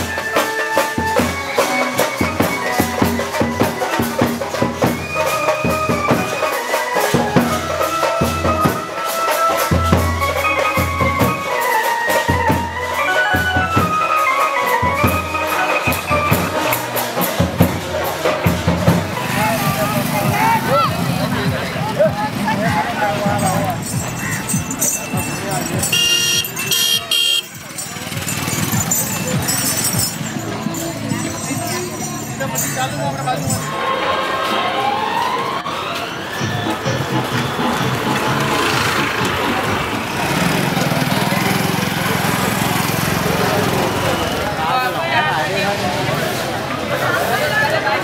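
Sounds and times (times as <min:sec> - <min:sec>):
music: 0:00.0 - 0:42.6
drum strokes: 0:00.0 - 0:44.6
crowd of overlapping voices: 0:00.0 - 0:48.0
street noise: 0:00.0 - 0:48.0
vehicle engine: 0:16.8 - 0:48.0
rising siren-like whine: 0:34.2 - 0:37.4.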